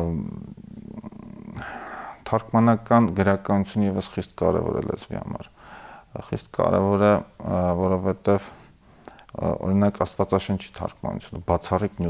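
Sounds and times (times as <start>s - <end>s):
intake of breath: 1.6s - 2.2s, 5.6s - 6.1s.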